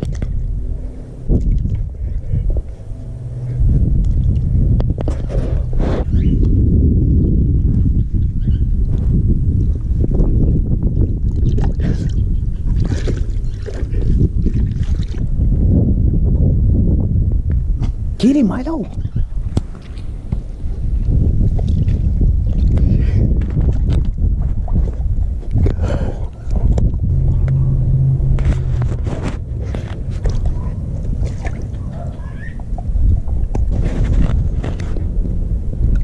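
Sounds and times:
water sloshing in pool: 11.0s - 15.3s, 19.7s - 35.0s.

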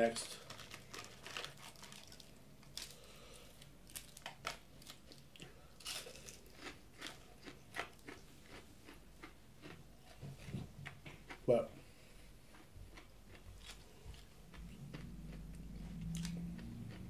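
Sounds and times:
chewing crisp onion rings: 0.1s - 11.8s, 12.4s - 17.0s.

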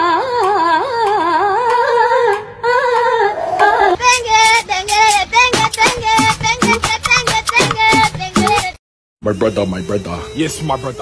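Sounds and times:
high-pitched voice singing: 0.0s - 8.8s.

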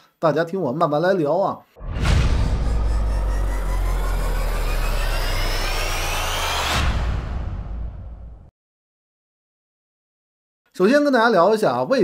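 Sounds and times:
deep rumble: 1.8s - 8.5s
rising tones: 1.8s - 8.5s
rushing whoosh: 1.8s - 8.5s.

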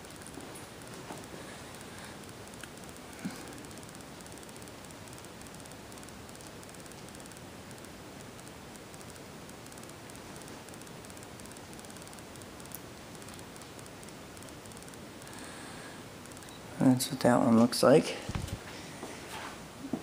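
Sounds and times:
faint hiss: 0.0s - 20.0s.

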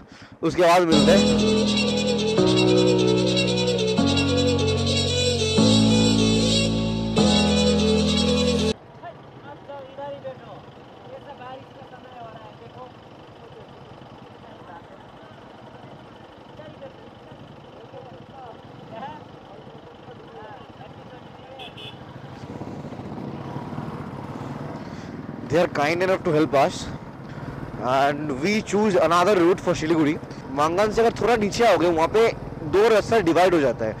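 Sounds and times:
motorcycle engine running: 0.9s - 25.5s.

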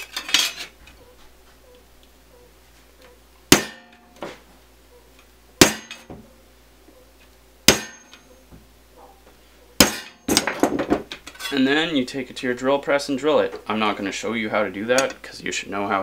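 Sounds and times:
metallic clatter: 0.0s - 0.8s
hammer striking metal awl: 3.5s - 4.1s, 5.6s - 6.1s, 7.7s - 8.2s, 9.8s - 10.5s.

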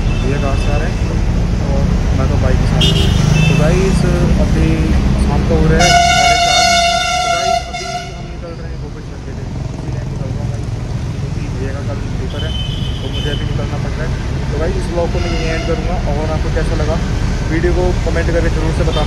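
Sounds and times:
vehicle horn: 2.8s - 3.7s, 5.8s - 8.5s, 15.2s - 15.9s.

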